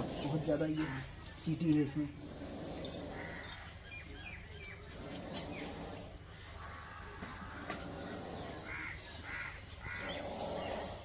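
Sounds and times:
outdoor background noise: 0:00.0 - 0:11.0
bird calling: 0:02.8 - 0:11.0.

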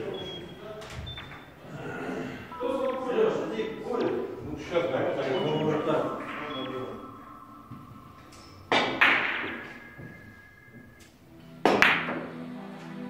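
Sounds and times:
billiard balls clacking: 0:07.7 - 0:12.3.

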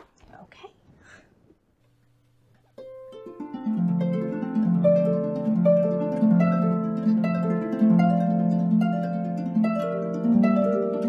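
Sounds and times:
harp notes plucked: 0:02.8 - 0:11.0.

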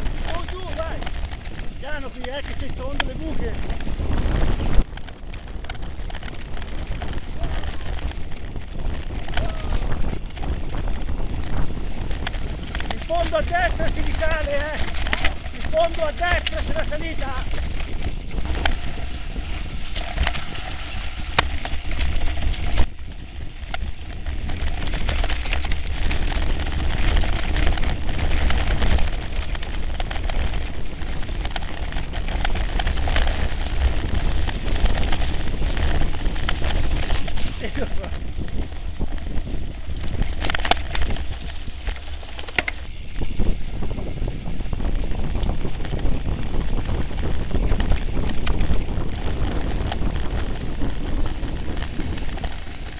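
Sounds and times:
bike knocking over bumps: 0:00.0 - 0:52.9
bike rattle and tyre noise: 0:00.0 - 0:52.9
wind buffeting microphone: 0:00.0 - 0:52.9.

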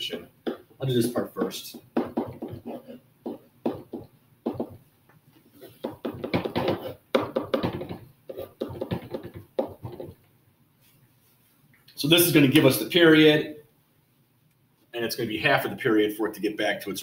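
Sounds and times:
writing on a whiteboard: 0:00.0 - 0:10.2.

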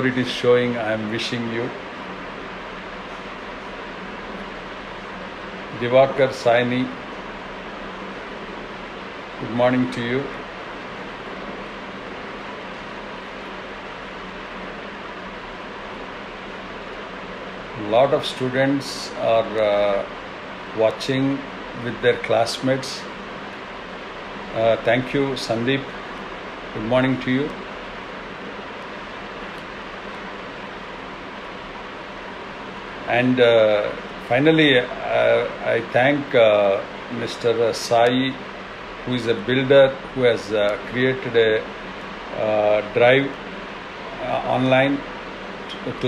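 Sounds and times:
faint low hum: 0:00.0 - 0:46.0
room background hiss: 0:00.0 - 0:46.0.

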